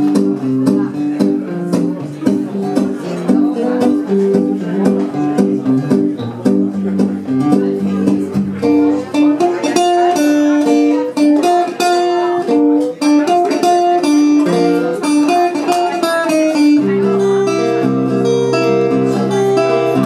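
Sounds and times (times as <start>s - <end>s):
solo acoustic guitar: 0.0s - 20.0s.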